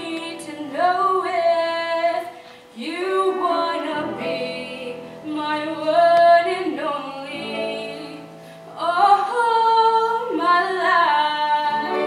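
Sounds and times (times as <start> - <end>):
women's chorus singing: 9.1 - 12.0.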